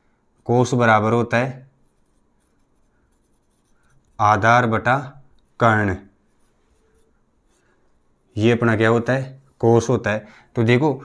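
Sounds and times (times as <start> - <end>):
marker pen scratching on whiteboard: 1.7 - 4.4, 5.2 - 7.8.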